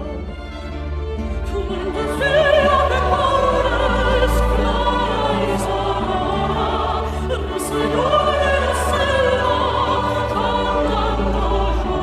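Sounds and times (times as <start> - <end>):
choir singing: 0.0 - 12.0
string orchestra: 0.0 - 12.0.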